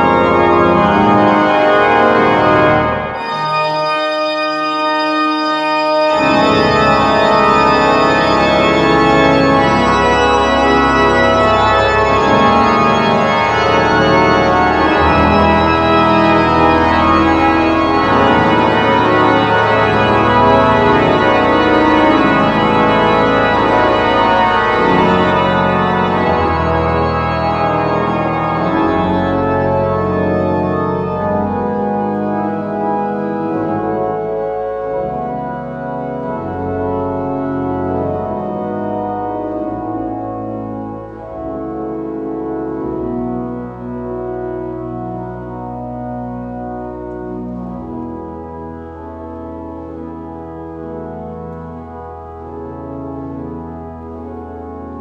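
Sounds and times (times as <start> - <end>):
pipe organ playing full chords: 0.0 - 55.0.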